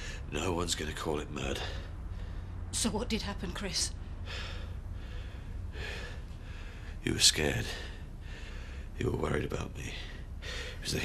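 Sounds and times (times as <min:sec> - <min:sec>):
steady low hum: 0:00.0 - 0:11.0
person breathing: 0:04.2 - 0:07.0, 0:07.7 - 0:09.0, 0:10.0 - 0:10.8.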